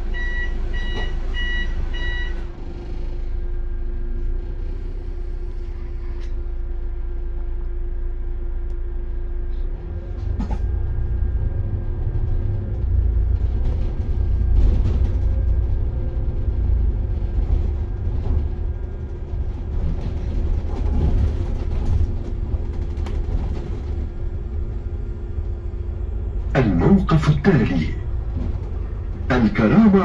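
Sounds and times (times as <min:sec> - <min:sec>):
bus engine and road rumble: 0:00.0 - 0:30.0.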